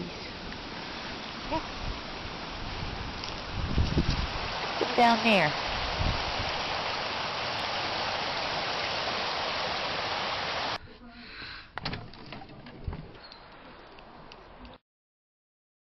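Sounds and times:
steady rushing noise: 0.0 - 10.8.

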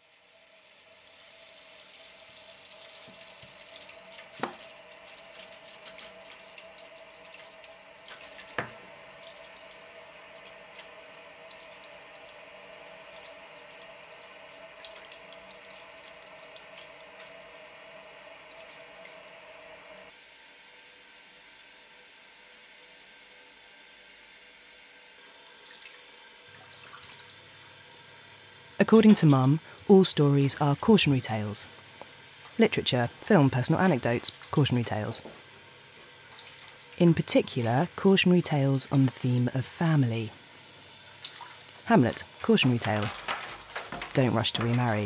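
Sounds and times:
water running into a metal sink: 0.0 - 20.1, 25.3 - 45.0
water drip: 1.9 - 20.0, 40.4 - 45.0
tap running into a metal sink: 4.2 - 4.8, 8.1 - 8.8, 41.2 - 45.0.

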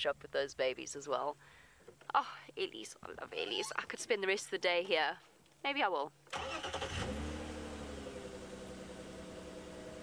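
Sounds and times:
engine starting and idling: 6.3 - 10.0.

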